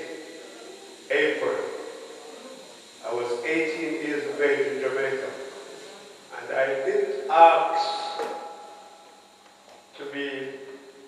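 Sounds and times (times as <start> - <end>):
man speaking into a microphone: 1.1 - 1.8, 3.0 - 5.4, 6.3 - 8.4, 10.0 - 10.6.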